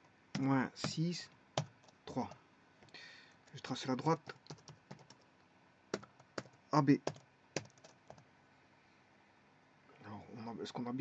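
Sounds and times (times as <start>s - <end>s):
keyboard keystrokes: 4.2s - 5.2s, 6.0s - 8.2s.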